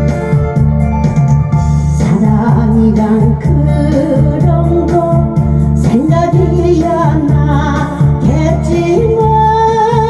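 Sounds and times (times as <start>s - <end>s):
karaoke backing track with beat: 0.0s - 10.0s
woman singing into microphone: 2.0s - 10.0s.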